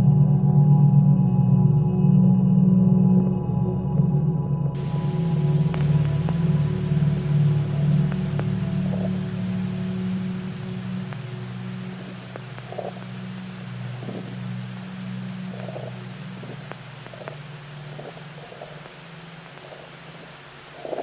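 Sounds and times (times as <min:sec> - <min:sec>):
low ambient drone: 0:00.0 - 0:21.0
higher held tones: 0:04.8 - 0:20.7
faint clicks: 0:05.6 - 0:06.8, 0:08.0 - 0:21.0.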